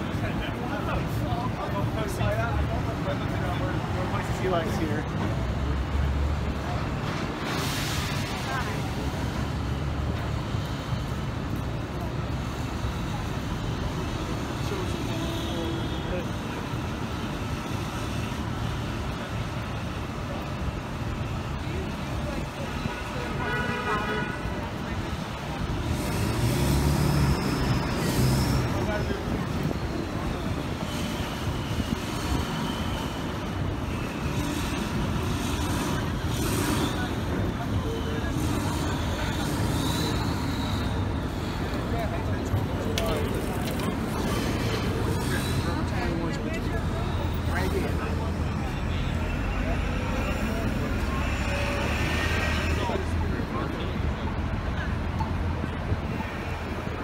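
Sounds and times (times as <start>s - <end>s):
pedestrians chattering: 0.0s - 57.0s
steady traffic noise: 0.0s - 57.0s.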